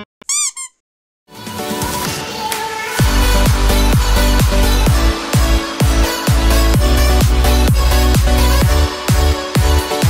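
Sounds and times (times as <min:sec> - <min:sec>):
high-pitched squeak: 0:00.0 - 0:00.8
music: 0:01.3 - 0:10.0.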